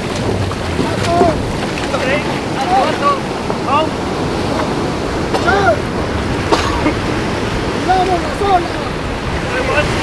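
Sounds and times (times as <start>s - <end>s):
surf breaking: 0.0s - 10.0s
wind buffeting microphone: 0.0s - 10.0s.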